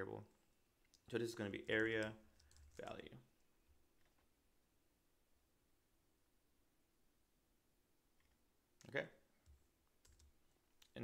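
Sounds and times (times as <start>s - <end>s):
computer keyboard and mouse clicks: 1.8s - 2.9s.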